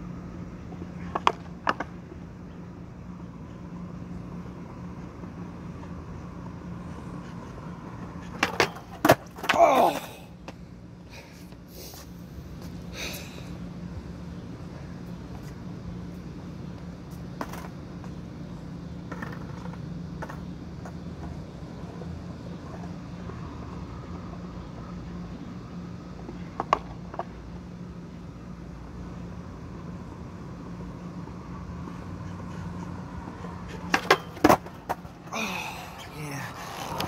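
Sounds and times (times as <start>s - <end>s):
skateboard wheels humming: 0.0s - 37.0s
skateboard clacks: 1.0s - 2.0s, 7.9s - 10.6s, 19.1s - 22.0s, 26.3s - 27.3s, 33.7s - 35.1s.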